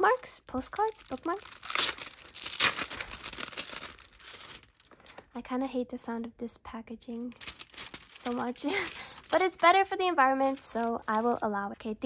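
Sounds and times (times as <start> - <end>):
plastic packaging crinkling: 0.0 - 5.3, 7.2 - 11.5.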